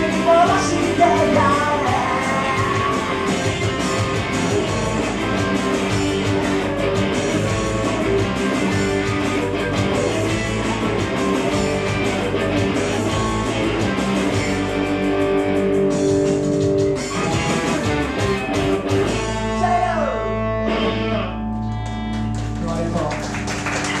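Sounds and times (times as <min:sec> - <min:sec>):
electric guitar strummed chords: 0:00.0 - 0:22.9.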